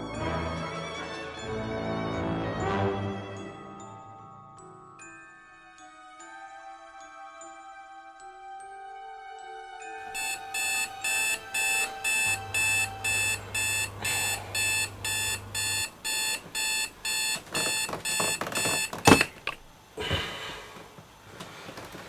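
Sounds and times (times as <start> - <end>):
alarm clock beeping: 10.0 - 19.4.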